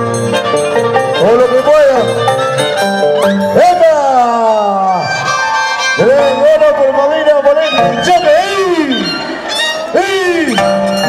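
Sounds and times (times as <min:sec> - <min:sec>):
violin music: 0:00.0 - 0:11.0.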